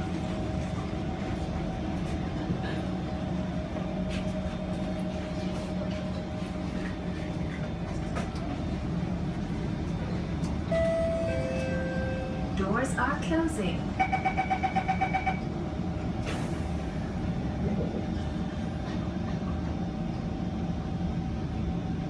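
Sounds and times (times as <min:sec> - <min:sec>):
train carriage hum: 0:00.0 - 0:22.0.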